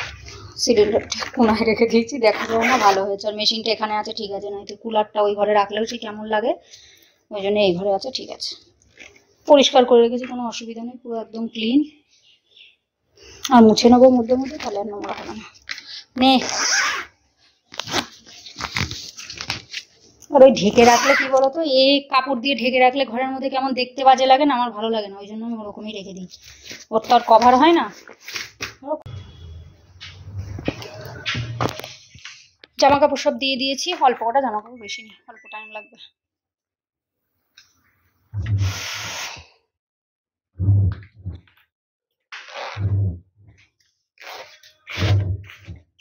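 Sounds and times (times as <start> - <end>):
metal zipper being pulled: 2.3 - 3.1, 16.4 - 17.2, 20.7 - 21.4, 42.4 - 43.2, 44.2 - 45.7
low rumble: 40.6 - 41.4.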